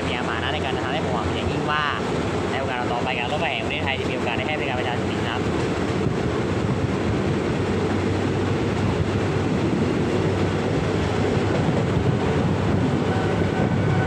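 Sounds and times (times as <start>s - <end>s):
train wheels on rails: 0.0s - 14.0s.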